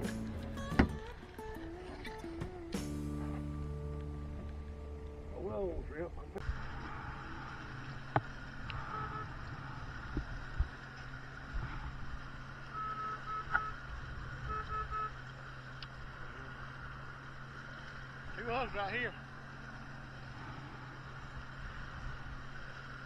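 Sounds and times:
outboard motor humming: 0.0 - 23.0
rush of water and wind: 5.2 - 23.0
short beeps: 8.8 - 9.4, 12.7 - 13.8, 14.5 - 15.1.

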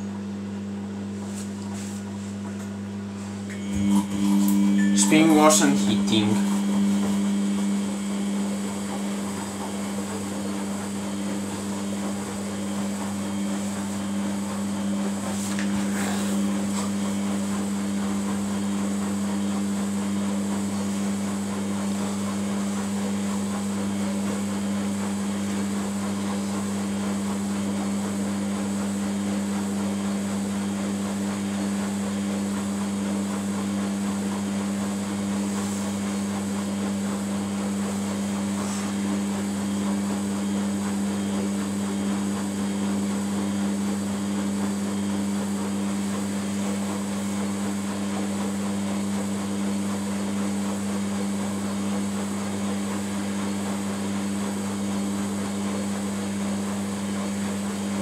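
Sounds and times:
washing machine humming: 0.0 - 58.0.

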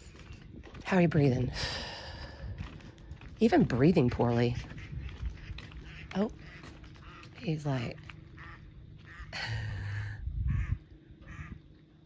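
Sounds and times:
waterfowl calling: 4.1 - 11.7.

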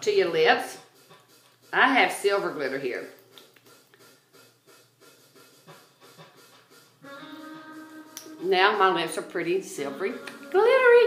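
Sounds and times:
makeup brush scratching: 0.0 - 3.1.

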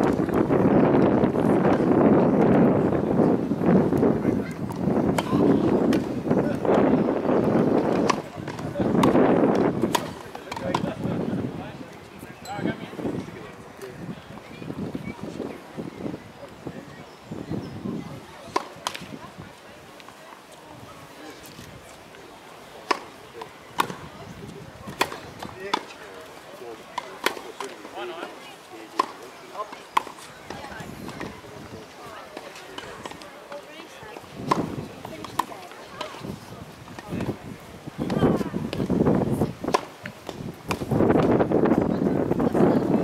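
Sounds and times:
wind buffeting microphone: 0.0 - 19.9, 23.6 - 25.7, 30.3 - 43.0
tennis balls struck by rackets: 3.9 - 11.2, 18.4 - 19.3, 22.8 - 24.2, 24.8 - 37.4, 38.0 - 41.3.

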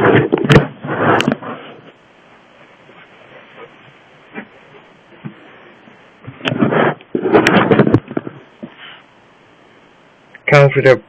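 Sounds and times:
low hiss: 0.5 - 11.0.

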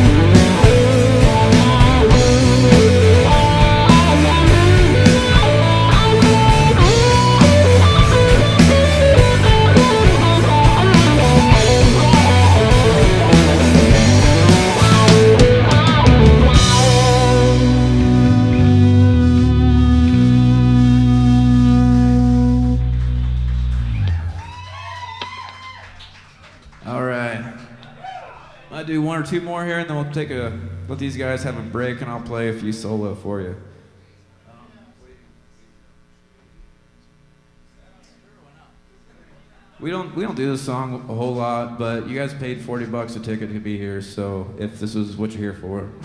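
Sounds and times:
live band playing: 0.0 - 24.7
electric guitar: 0.0 - 25.6.

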